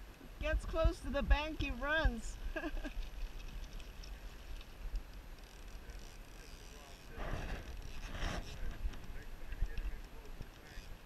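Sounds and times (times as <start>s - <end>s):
shallow river flowing: 1.4s - 11.0s
wind on microphone: 7.1s - 11.0s.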